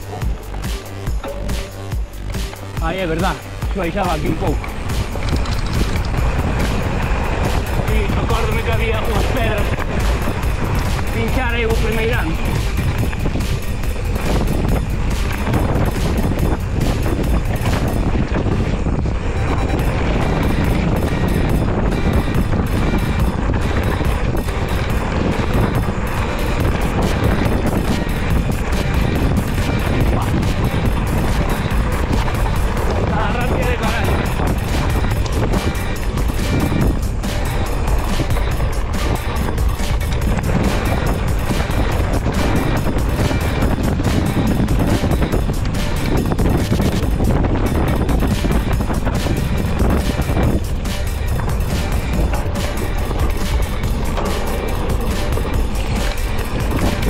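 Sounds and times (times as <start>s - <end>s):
bike frame rattling: 0.0s - 57.0s
bike tyres rolling on gravel: 0.0s - 57.0s
stones clicking under tyres: 0.0s - 57.0s
wind buffeting microphone: 0.0s - 57.0s.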